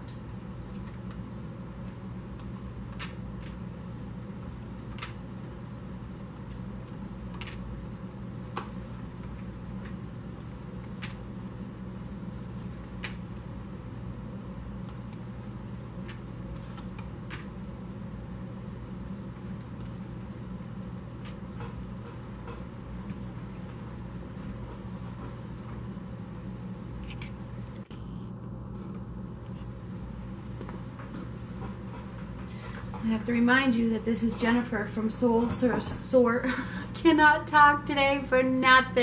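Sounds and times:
steady low hum: 0:00.0 - 0:39.0
cards clicking on wooden table: 0:02.4 - 0:03.6.

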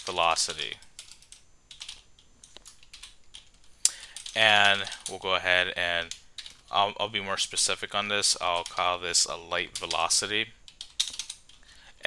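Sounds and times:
computer keyboard typing: 0:00.2 - 0:05.1, 0:08.3 - 0:11.6.

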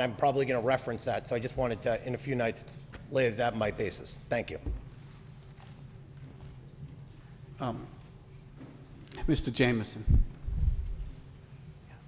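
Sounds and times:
low electrical hum: 0:00.0 - 0:12.0
faint footsteps: 0:10.1 - 0:12.0.

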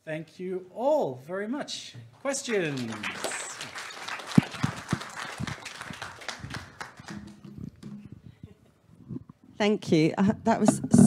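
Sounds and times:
audience applauding: 0:02.4 - 0:07.9.

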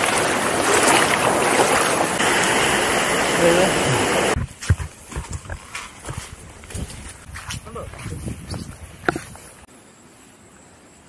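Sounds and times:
water rushing: 0:00.0 - 0:06.9
footsteps on stony muddy track: 0:04.3 - 0:09.7.

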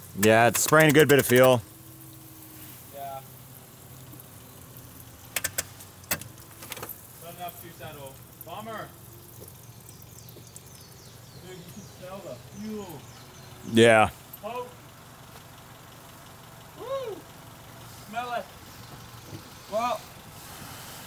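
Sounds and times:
fuel spraying and dribbling: 0:00.0 - 0:21.0
sharp clicks: 0:00.2 - 0:01.7, 0:05.2 - 0:06.9.

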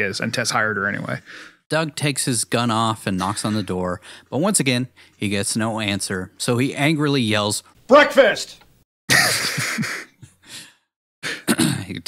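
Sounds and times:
man coughing: 0:11.2 - 0:12.0.

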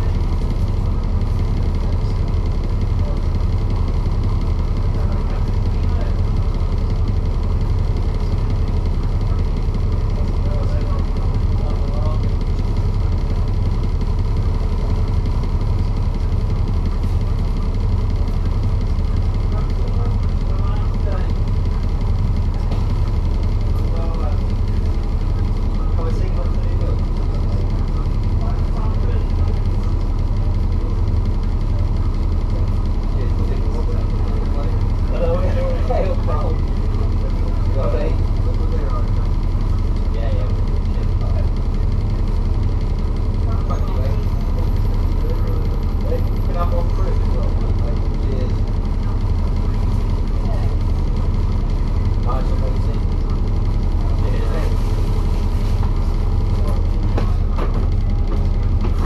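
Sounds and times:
bus diesel engine idling: 0:00.0 - 0:59.0.

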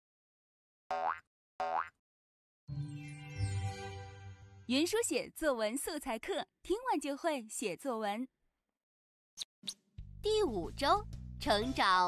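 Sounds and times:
soft musical jingle: 0:02.7 - 0:04.7.

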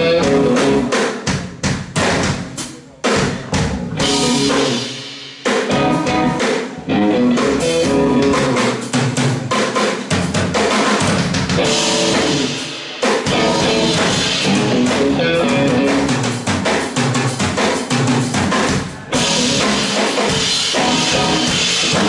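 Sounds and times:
bass guitar: 0:00.0 - 0:01.0, 0:03.2 - 0:09.4, 0:11.0 - 0:22.0
electric guitar: 0:00.0 - 0:01.0, 0:03.9 - 0:09.2, 0:11.4 - 0:16.8, 0:19.0 - 0:22.0
drum kit: 0:00.0 - 0:22.0.

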